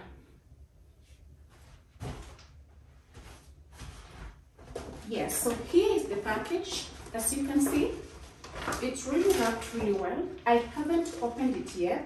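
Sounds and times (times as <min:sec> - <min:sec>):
paper bag and wrapping rustling: 0:03.1 - 0:11.9.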